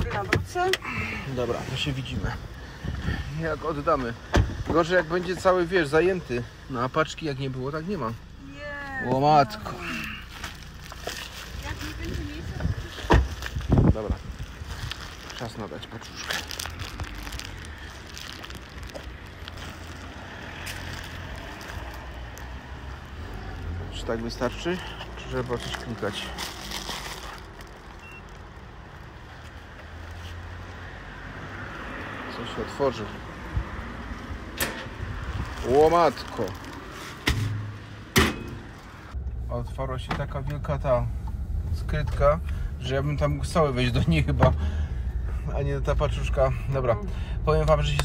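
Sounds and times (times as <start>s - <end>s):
wind rumble on microphone: 11.6s - 15.2s, 33.4s - 35.8s
metal locker door slamming: 37.3s - 38.7s.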